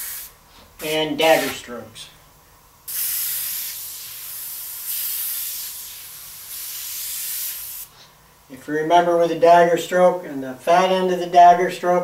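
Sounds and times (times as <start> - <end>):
airbrush hissing: 0.0 - 1.6, 2.9 - 7.9.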